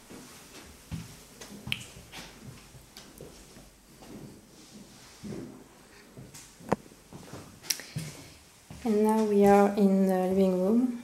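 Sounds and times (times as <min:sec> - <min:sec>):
footsteps on laminate floor: 0:00.0 - 0:09.7.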